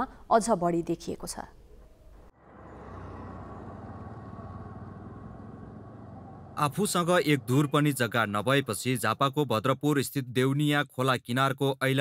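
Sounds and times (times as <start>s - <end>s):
motorcycle engines running: 2.4s - 8.9s.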